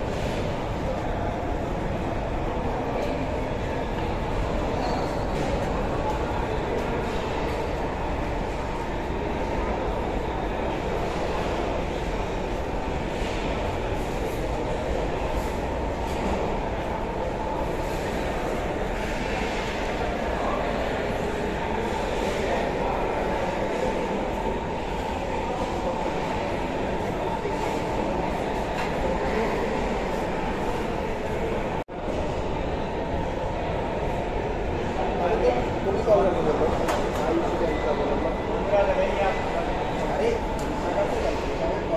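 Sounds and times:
faint voices: 0:00.0 - 0:41.9
steady mechanical noise: 0:00.0 - 0:41.9.

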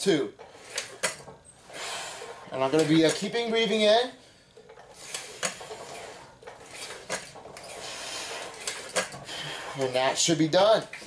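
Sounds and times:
cable machine clicking and clinking: 0:00.4 - 0:01.4, 0:02.2 - 0:04.0, 0:04.6 - 0:11.0
person breathing: 0:01.7 - 0:02.4, 0:09.2 - 0:09.8.

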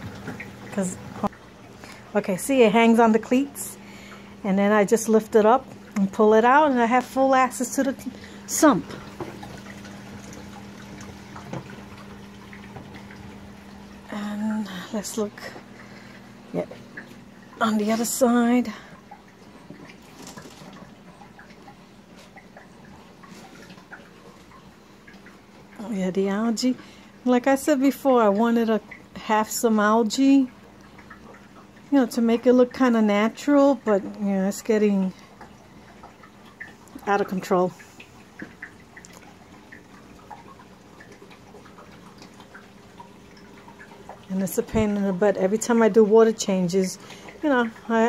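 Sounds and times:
faint equipment hum: 0:00.0 - 0:48.0
small water drips: 0:00.0 - 0:48.0
water trickling: 0:00.0 - 0:48.0.

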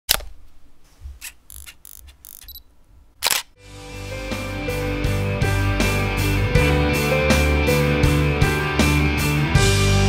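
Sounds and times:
camera click: 0:01.2 - 0:02.6, 0:03.2 - 0:03.6
camera shutter release: 0:01.2 - 0:02.6, 0:03.2 - 0:03.6
short mechanical clicks: 0:01.2 - 0:03.6
high autofocus beep: 0:01.5 - 0:02.7
music: 0:03.6 - 0:10.0.

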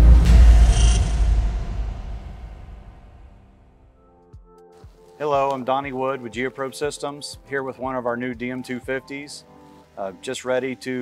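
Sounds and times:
deep bass swell: 0:00.0 - 0:04.0.

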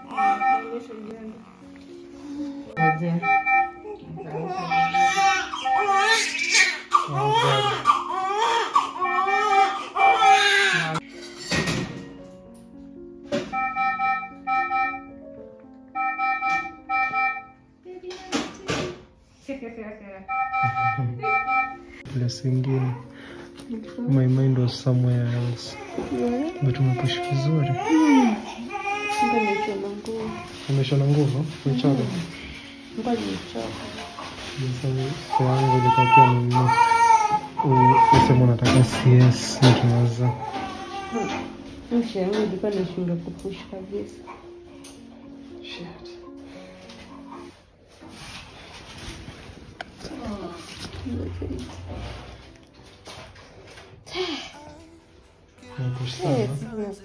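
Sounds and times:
newborn baby crying: 0:00.0 - 0:02.8, 0:03.6 - 0:11.0, 0:25.7 - 0:30.7, 0:35.2 - 0:41.6.

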